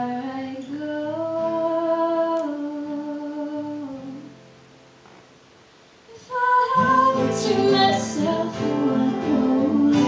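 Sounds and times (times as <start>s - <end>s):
woman singing wordless melody: 0.0s - 4.4s, 6.1s - 10.0s
acoustic guitars: 0.0s - 10.0s.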